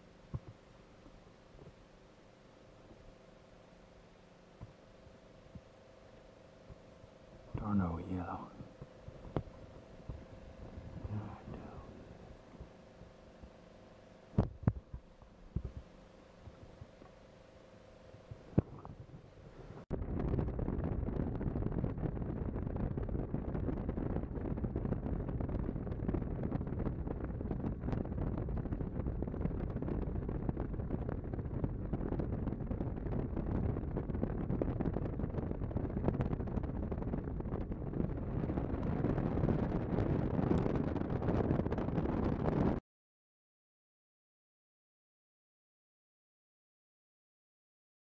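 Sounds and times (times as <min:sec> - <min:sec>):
boat engine rumble: 0:00.0 - 0:42.8
wind noise on microphone: 0:02.7 - 0:17.4, 0:18.2 - 0:42.8.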